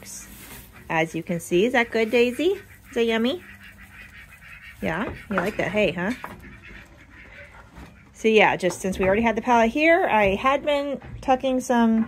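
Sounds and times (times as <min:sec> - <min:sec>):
goat eating hay rustling: 0:00.0 - 0:08.2
woman speaking: 0:00.9 - 0:03.5, 0:04.8 - 0:06.2, 0:08.2 - 0:12.0.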